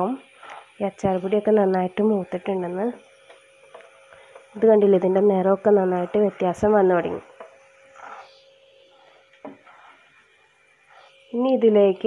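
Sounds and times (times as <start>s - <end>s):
faint steady hum: 0.0s - 12.0s
spatula scraping a pan: 7.3s - 11.2s.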